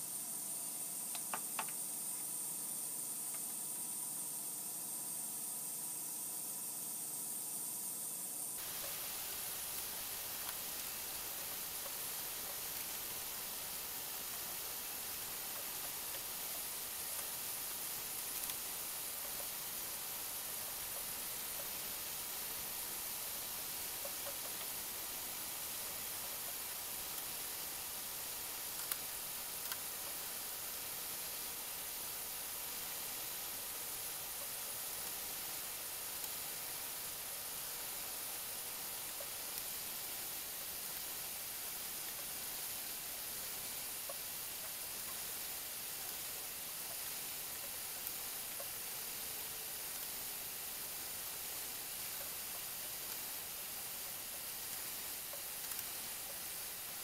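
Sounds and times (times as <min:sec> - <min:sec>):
steady background hiss: 0:00.0 - 0:57.0.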